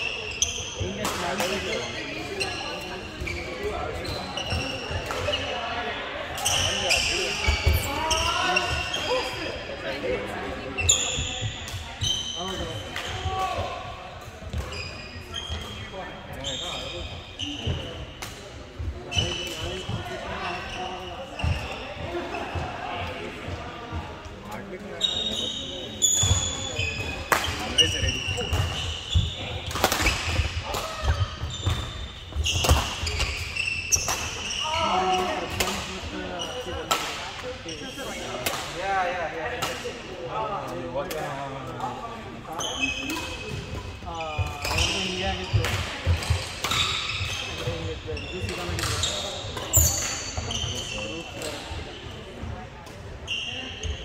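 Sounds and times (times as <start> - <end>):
sneakers squeaking: 0.0 - 38.8, 39.4 - 54.0
murmur of voices: 0.0 - 54.0.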